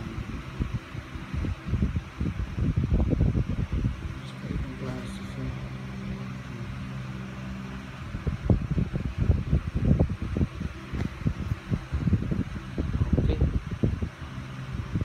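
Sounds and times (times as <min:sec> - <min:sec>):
fan humming: 0:00.0 - 0:15.0.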